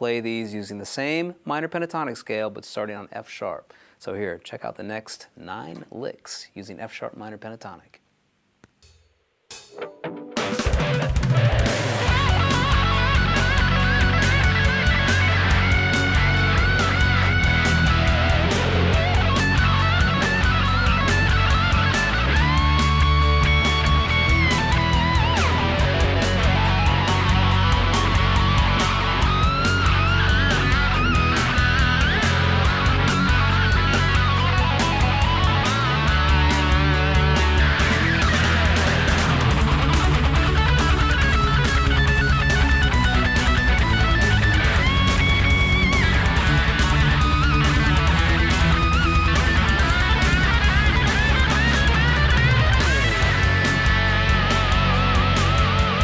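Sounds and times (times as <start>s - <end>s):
backing track with drums: 8.7s - 56.0s
electric guitar lead licks: 9.7s - 56.0s.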